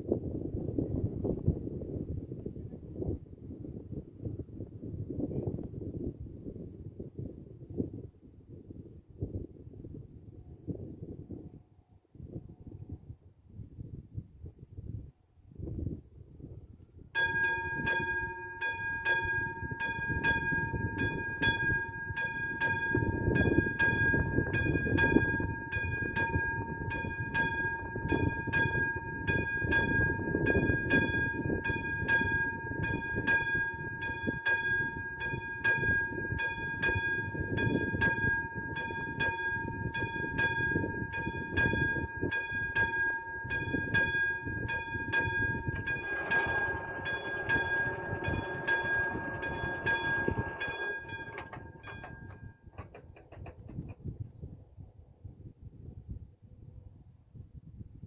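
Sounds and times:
level crossing warning bell: 17.2 - 53.6.

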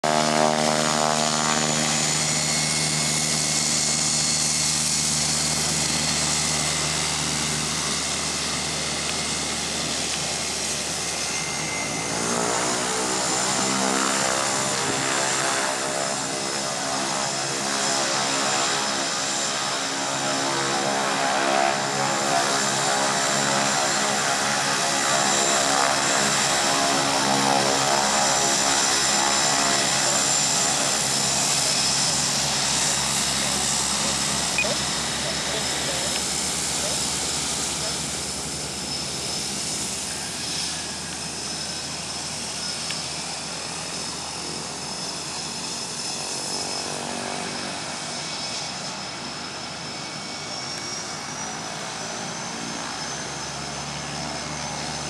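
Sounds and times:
plane engine and propeller: 0.0 - 55.0
high whine: 29.9 - 45.4.

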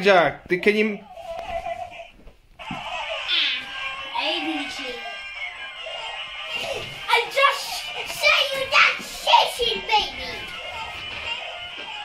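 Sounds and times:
young children shouting excitedly: 3.3 - 5.4, 6.5 - 10.9.

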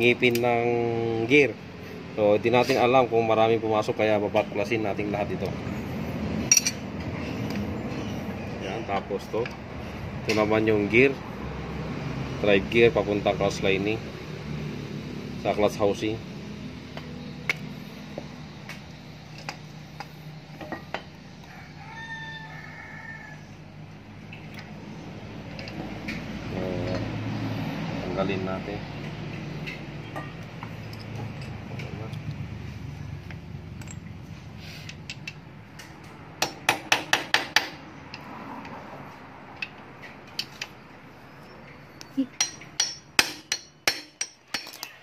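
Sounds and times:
rooster crowing: 21.2 - 23.8
hand tool knocking on metal: 42.4 - 44.8.

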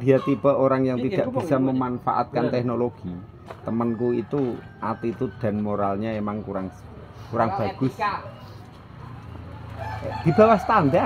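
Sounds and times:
rooster crowing faintly: 9.0 - 11.0.

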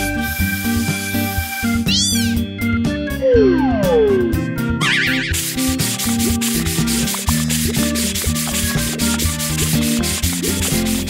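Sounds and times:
light backing music: 0.0 - 11.0
sponge scrubbing: 4.8 - 11.0.

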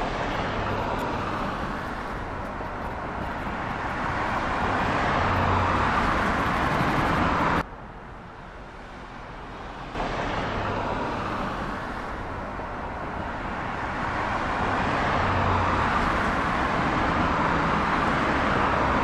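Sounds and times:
road traffic: 0.0 - 19.0.

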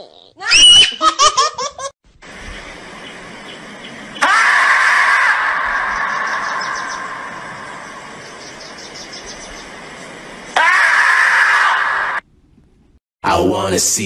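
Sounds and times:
marmot screaming: 0.4 - 1.0, 4.1 - 7.4, 10.5 - 12.2.

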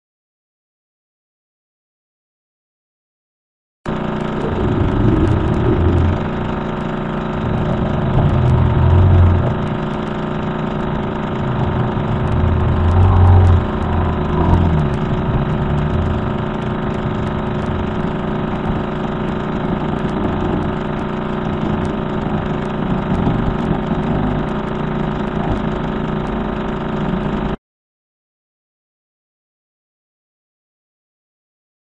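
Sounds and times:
drone of layered tones: 4.3 - 27.2
static hiss: 4.4 - 26.8.

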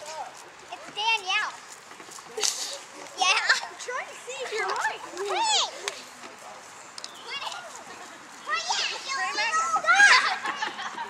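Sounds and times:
children calling out: 2.4 - 6.0, 7.2 - 11.0.

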